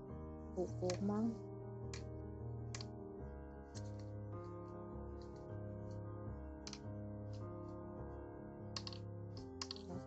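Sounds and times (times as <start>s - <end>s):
background music: 0.0s - 10.0s
knitting needles clicking: 0.7s - 1.2s, 2.7s - 3.0s, 3.7s - 4.1s, 6.6s - 7.4s, 8.8s - 10.0s.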